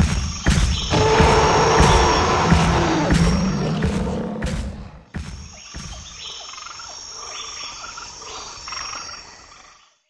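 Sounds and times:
frogs croaking: 0.3s - 10.0s
insects trilling: 5.4s - 10.0s.

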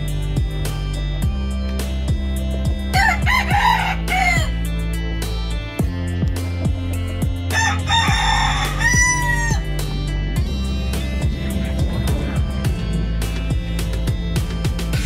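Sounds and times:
music with steady beat: 0.0s - 15.0s
rooster crowing: 2.9s - 4.6s, 7.5s - 9.7s.

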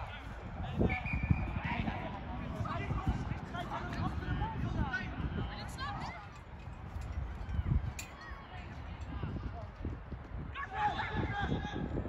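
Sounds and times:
loud shout: 10.5s - 11.9s.

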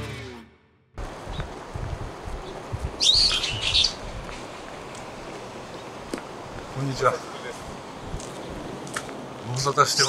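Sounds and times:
outdoor background noise: 0.0s - 10.0s
bird chirping: 2.4s - 4.6s.

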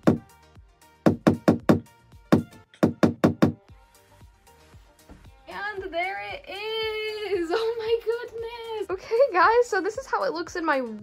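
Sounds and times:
hammer striking a nail: 0.0s - 0.3s, 1.1s - 3.6s.

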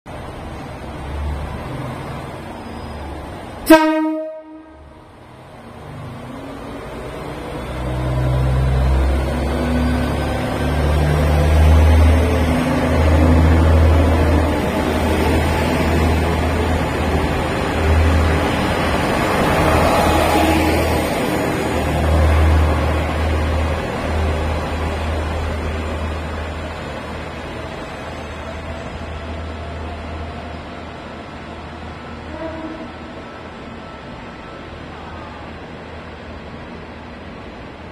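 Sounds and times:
diesel railcar engine rumbling: 0.1s - 37.9s.

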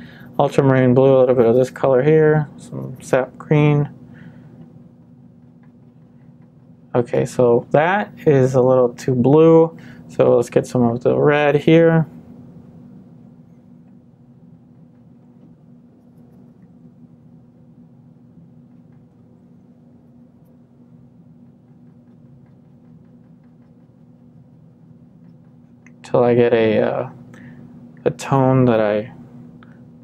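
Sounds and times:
steady low hum: 0.0s - 30.0s
paintbrush scratching and dabbing: 5.0s - 6.9s, 21.6s - 25.9s.

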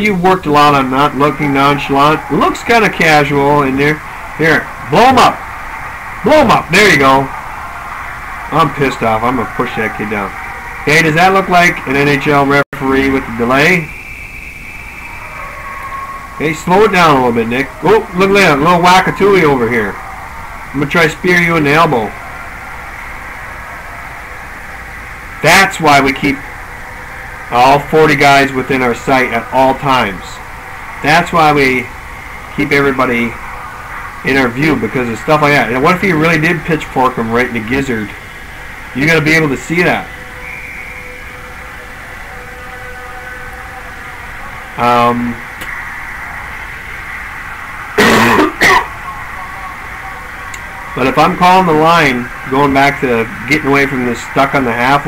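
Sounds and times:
steady hum and hiss: 0.0s - 55.0s
man clearing throat: 48.0s - 48.9s.

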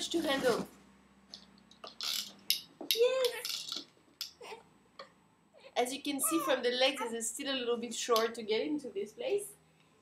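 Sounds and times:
plastic toys clicking and rattling: 1.8s - 3.9s.

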